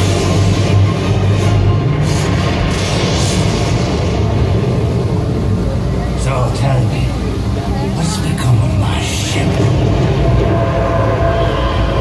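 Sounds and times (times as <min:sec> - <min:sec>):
loud low rumble from speakers: 0:00.0 - 0:12.0.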